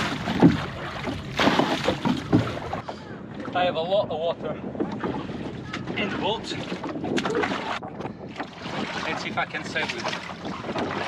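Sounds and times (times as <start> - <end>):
small knocks on boat: 0.0 - 3.6
water sloshing in a boat: 0.0 - 11.0.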